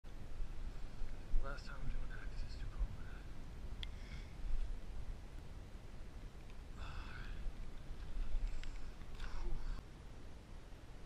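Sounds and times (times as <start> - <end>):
person murmuring near a whisper: 6.8 - 7.5, 9.2 - 9.8.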